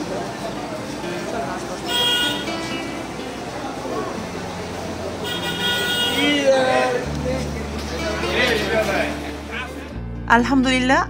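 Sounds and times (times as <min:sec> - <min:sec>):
crowd chatter: 0:00.0 - 0:10.1
horn sounding: 0:01.8 - 0:03.0, 0:05.2 - 0:07.1.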